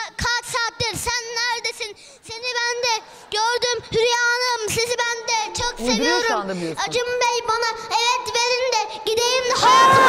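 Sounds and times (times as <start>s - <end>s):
boy rapping into a microphone: 0.0s - 10.0s.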